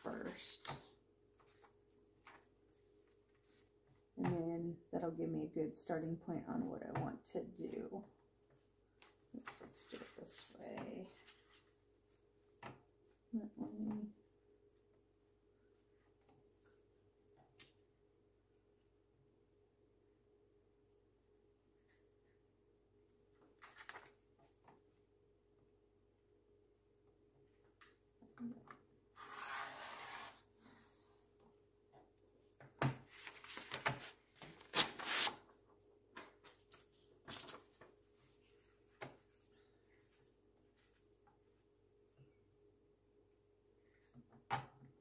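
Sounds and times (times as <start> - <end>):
paper rustling and sliding: 29.2 - 30.5, 33.0 - 35.4.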